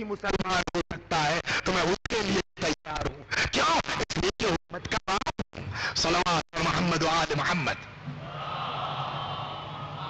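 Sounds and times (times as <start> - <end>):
man speaking through microphone: 0.0 - 7.9.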